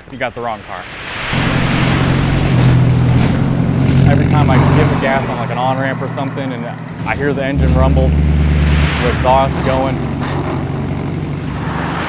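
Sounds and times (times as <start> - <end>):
road noise: 0.0 - 12.0
rushing wind: 0.0 - 12.0
car exhaust rumbling: 0.3 - 12.0.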